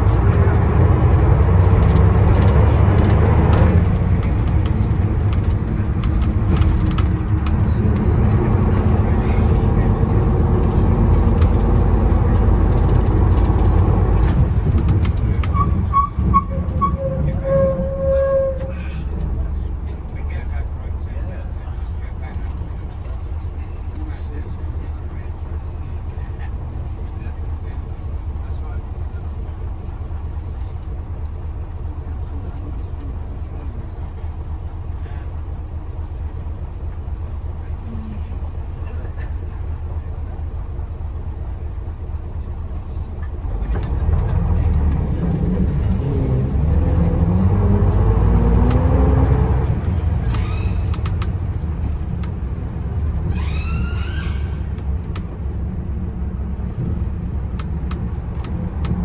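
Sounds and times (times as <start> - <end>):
diesel engine droning: 0.0 - 59.0.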